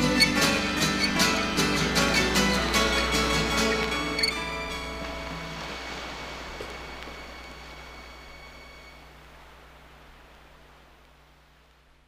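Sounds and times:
acoustic guitar chord ringing: 0.0s - 9.0s
low steady hum: 0.0s - 12.0s
recording hiss: 0.0s - 12.0s.

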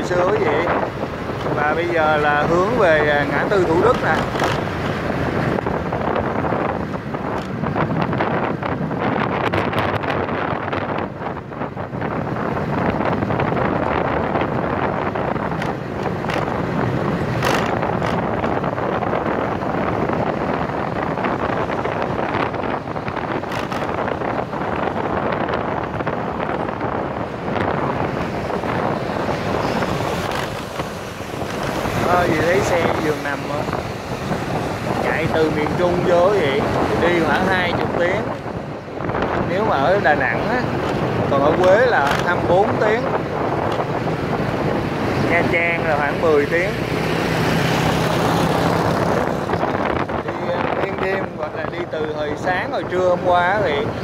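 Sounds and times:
motorbike engine and tyre noise: 0.0s - 54.0s
wind rushing over microphone: 0.0s - 54.0s.

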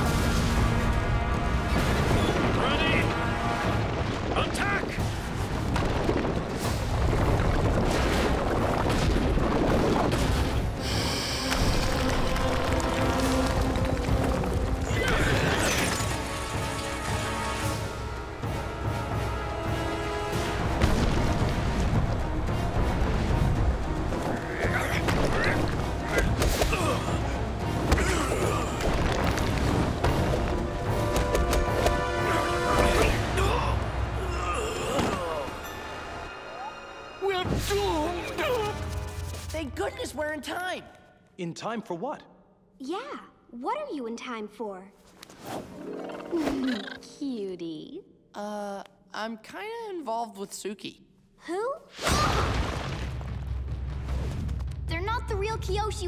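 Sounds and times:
dramatic music: 0.0s - 9.1s, 10.0s - 40.8s
booms and crashes: 20.7s - 23.8s.

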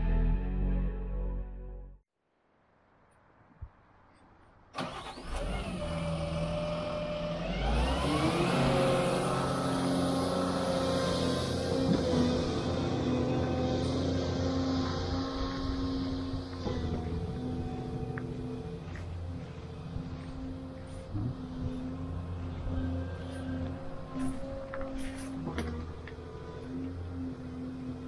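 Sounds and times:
excavator diesel engine: 4.8s - 28.0s.

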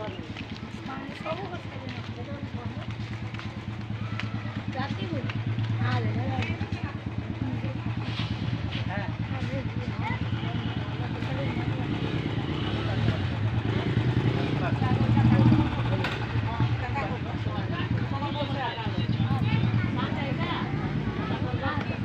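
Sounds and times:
people talking: 0.0s - 22.0s.

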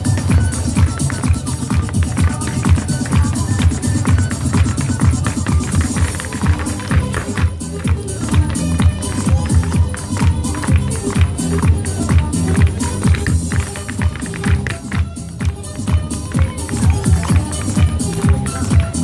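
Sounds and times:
dance music over sound system: 0.0s - 19.0s.

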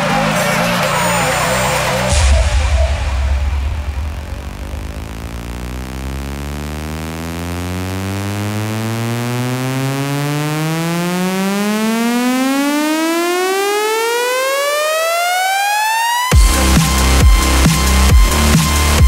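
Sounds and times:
deep bass: 0.0s - 11.6s, 16.3s - 19.0s
buzzy synth riser: 0.0s - 19.0s.

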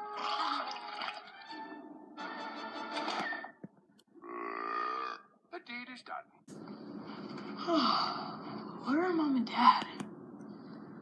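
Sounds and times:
music: 0.0s - 3.6s.

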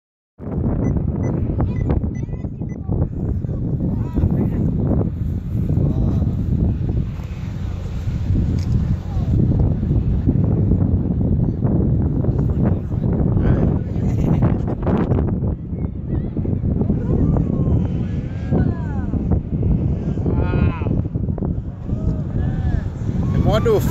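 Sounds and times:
wind buffeting microphone: 0.4s - 23.9s.

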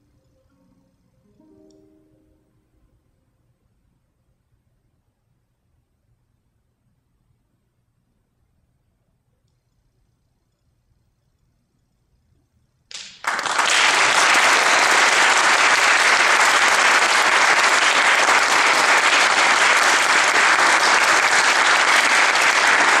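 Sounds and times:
audience applause: 12.9s - 23.0s.

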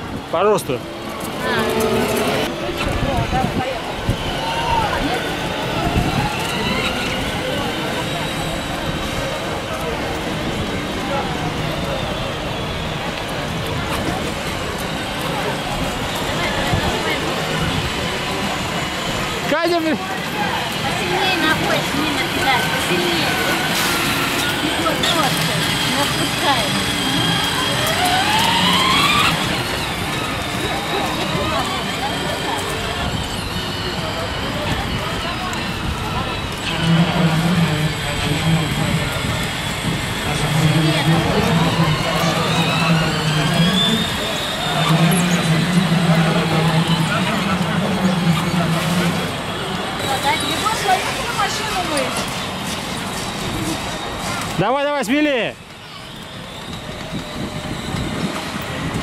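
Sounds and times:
indistinct voices: 0.0s - 59.0s
toy electric motors whining: 4.0s - 9.2s, 9.8s - 59.0s.

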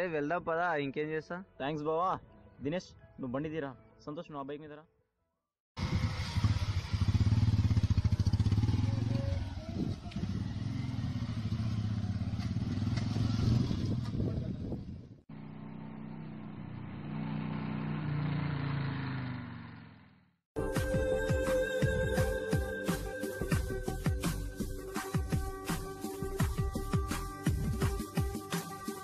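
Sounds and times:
motorcycle engines pulling away: 5.8s - 20.2s.

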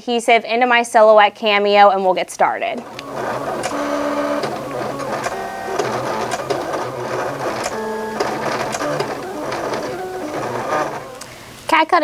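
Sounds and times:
craft cutter motors whirring: 2.8s - 11.4s.

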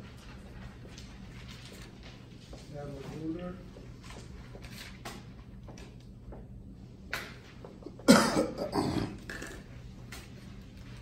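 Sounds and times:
person coughing: 8.0s - 9.6s.

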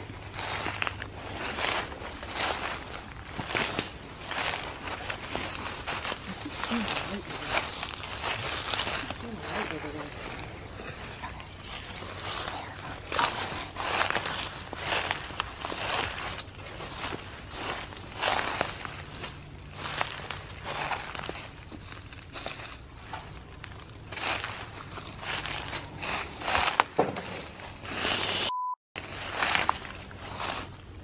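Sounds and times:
footsteps crunching on dry ground: 0.0s - 28.4s, 29.0s - 31.0s.

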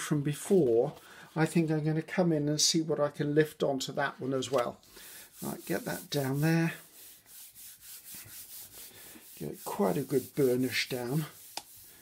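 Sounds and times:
hand rubbing on paper: 5.0s - 12.0s.

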